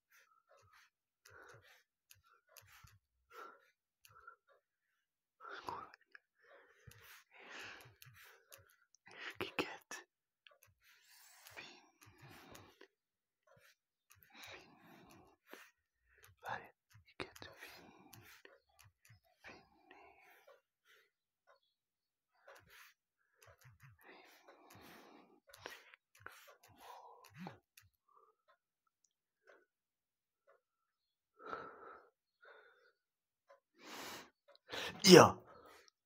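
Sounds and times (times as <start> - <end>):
person whispering: 5.4 - 6.2, 9.1 - 10.1, 16.3 - 18.4, 34.8 - 35.4.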